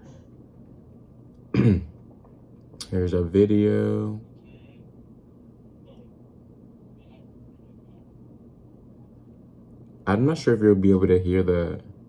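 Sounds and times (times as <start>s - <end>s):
man clearing his throat: 1.5s - 2.0s.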